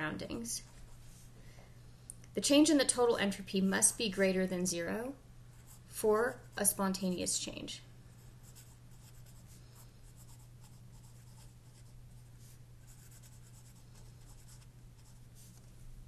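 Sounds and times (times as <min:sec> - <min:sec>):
steady low hum: 0:00.0 - 0:16.0
pencil scratching on paper: 0:08.4 - 0:15.6.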